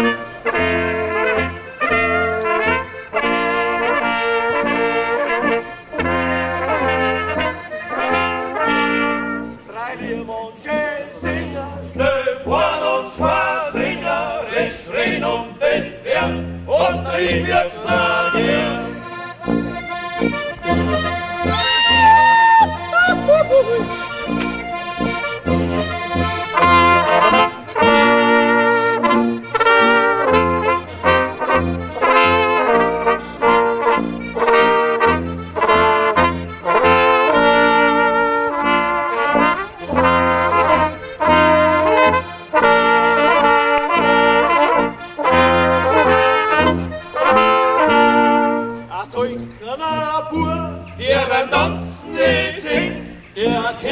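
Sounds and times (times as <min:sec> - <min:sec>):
folk brass band playing: 0:00.0 - 0:53.9
tuba bass notes: 0:00.0 - 0:53.9.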